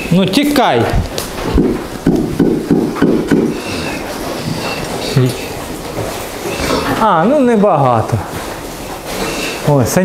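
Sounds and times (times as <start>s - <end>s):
sharp knocks: 1.2s - 4.8s
pigs grunting: 1.4s - 9.9s.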